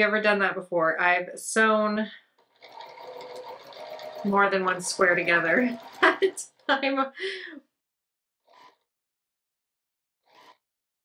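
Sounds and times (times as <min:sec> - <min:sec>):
sewing machine stitching: 0:02.2 - 0:07.0, 0:08.4 - 0:08.9, 0:10.2 - 0:10.7.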